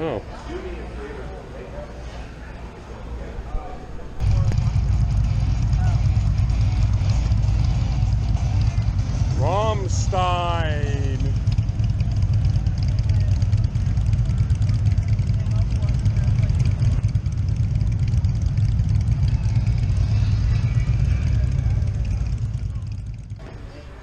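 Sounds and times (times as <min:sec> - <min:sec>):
motorcycle engine rumbling: 0:02.4 - 0:24.0.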